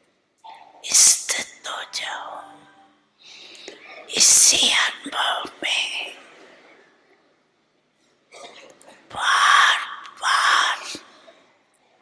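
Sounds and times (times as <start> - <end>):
elderly woman whispering into microphone: 0.4 - 2.9, 3.6 - 6.8, 8.7 - 12.0.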